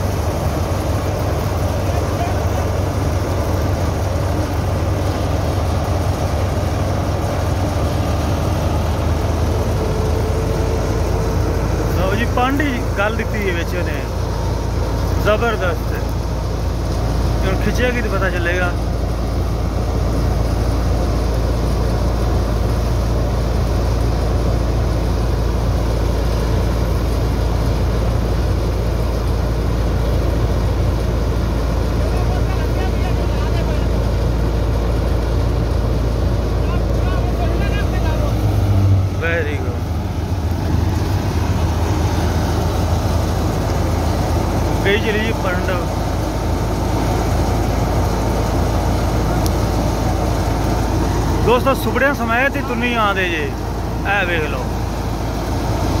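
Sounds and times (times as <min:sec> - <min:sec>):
thresher and tractor droning: 0:00.0 - 0:56.0.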